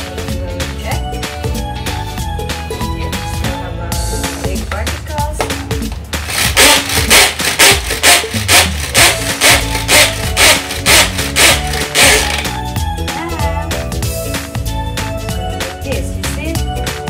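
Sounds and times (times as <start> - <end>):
background music: 0.0 - 17.0
pull-cord food chopper whirring: 6.2 - 12.6.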